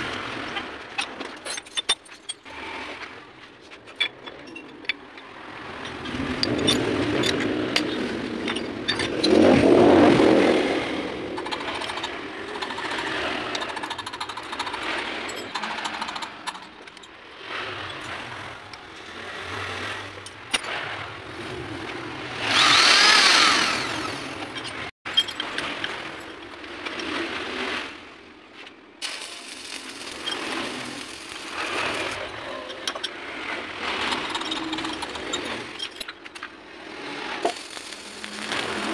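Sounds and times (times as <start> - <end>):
metal tool parts clanking: 0.1 - 2.8, 3.8 - 9.4, 11.4 - 17.2, 24.4 - 26.4, 29.0 - 36.6
metal scraping: 29.0 - 38.9.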